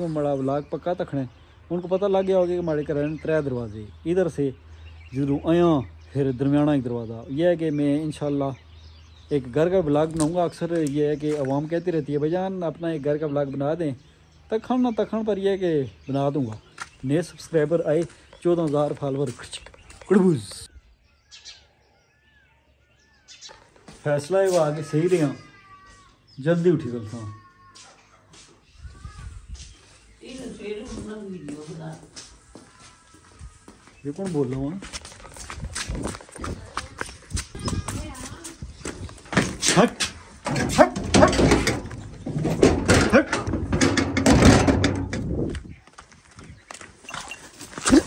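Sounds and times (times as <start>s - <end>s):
birds calling: 0.0s - 48.0s
goat cry: 24.5s - 26.3s, 27.0s - 28.3s.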